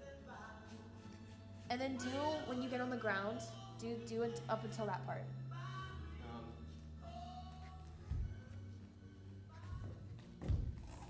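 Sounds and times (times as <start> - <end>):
dull thuds on wooden floor: 9.8 - 11.0.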